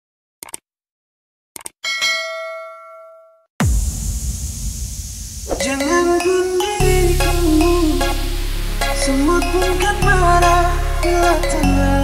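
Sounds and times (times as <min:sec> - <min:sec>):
bell ding: 0:01.8 - 0:03.4.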